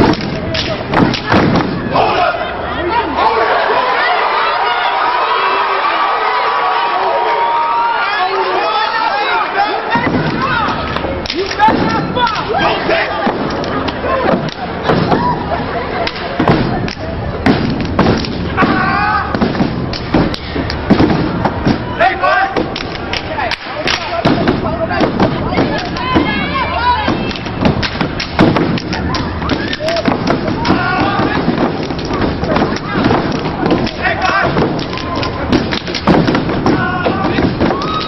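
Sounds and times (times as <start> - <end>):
stomping and clapping in unison: 0.0 - 2.1, 9.9 - 21.9, 22.5 - 38.0
people cheering and shouting: 0.0 - 38.0.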